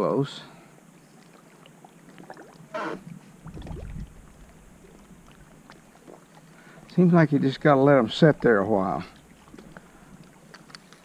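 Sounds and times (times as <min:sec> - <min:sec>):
water lapping against hull: 0:00.4 - 0:11.0
low rumble: 0:03.4 - 0:05.7.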